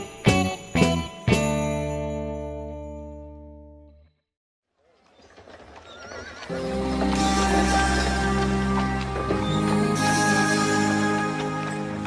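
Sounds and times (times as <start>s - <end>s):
music: 0.0s - 4.2s, 6.5s - 12.0s.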